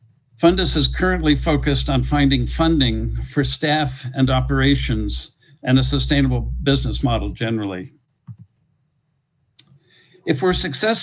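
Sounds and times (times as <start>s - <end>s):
speech: 0.4s - 7.9s, 10.3s - 11.0s.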